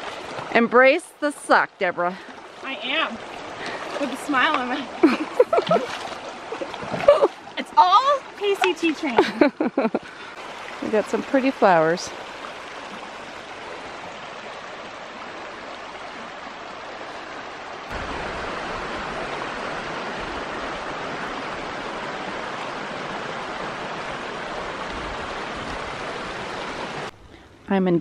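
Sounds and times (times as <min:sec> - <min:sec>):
creek running over stones: 0:00.0 - 0:27.2.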